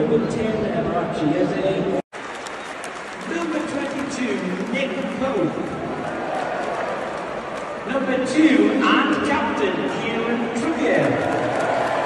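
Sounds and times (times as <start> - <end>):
crowd clapping: 2.1 - 8.1, 10.6 - 12.0
man's voice: 3.3 - 5.6, 7.8 - 11.2.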